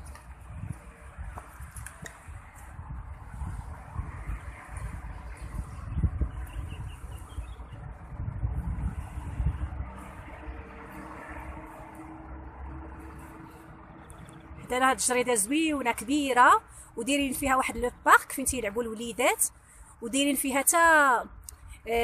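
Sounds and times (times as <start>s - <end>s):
distant road traffic rumble: 0.0s - 22.0s.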